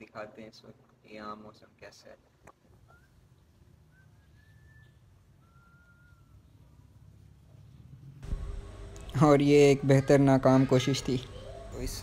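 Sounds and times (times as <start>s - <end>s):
thin whistled notes: 2.8s - 6.7s.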